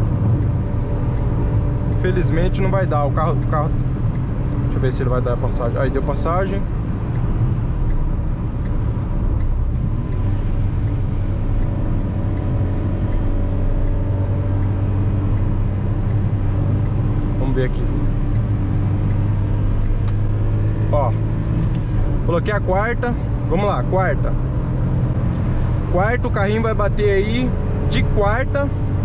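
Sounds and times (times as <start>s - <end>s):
road and tyre noise: 0.0s - 29.0s.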